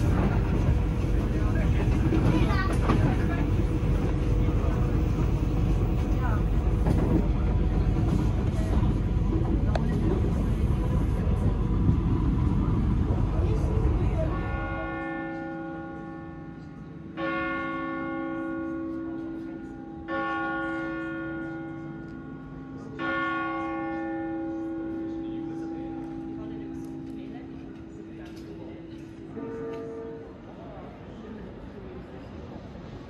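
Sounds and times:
train rumble inside carriage: 0.0 - 17.2, 23.8 - 33.0
church bell tolling: 14.3 - 28.0.

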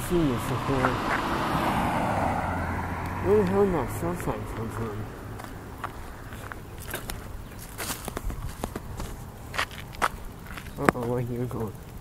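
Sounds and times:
footsteps taps and scuffs: 4.2 - 11.2.

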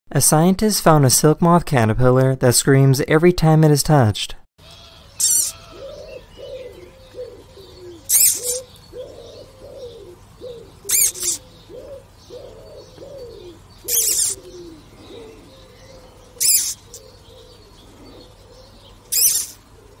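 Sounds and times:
caterpillar high squeaks: 4.8 - 5.9, 8.1 - 8.7, 10.9 - 11.4, 13.9 - 14.5, 16.4 - 17.0, 19.1 - 19.6
low warbling coo: 5.2 - 19.0.

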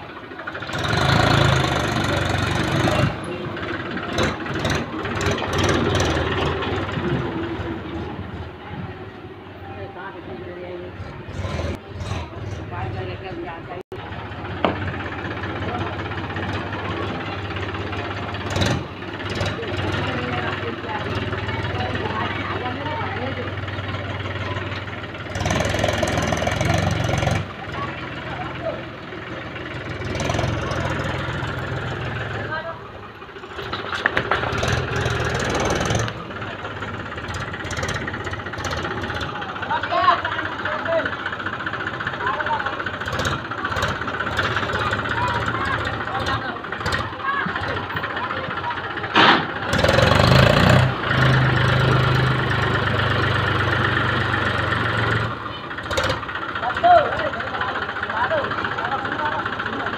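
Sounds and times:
tractor engine chugging: 0.0 - 59.9
people talking: 1.9 - 5.7, 6.4 - 12.0, 12.6 - 56.0, 56.6 - 59.9.

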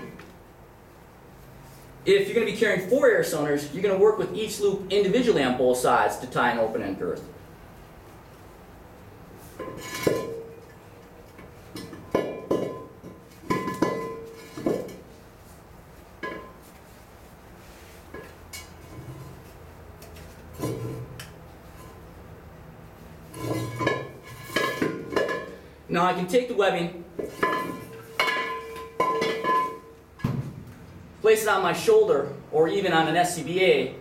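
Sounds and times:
metal cylinders clanking on concrete: 9.6 - 15.1, 20.5 - 22.0, 23.2 - 25.6, 27.2 - 30.3.

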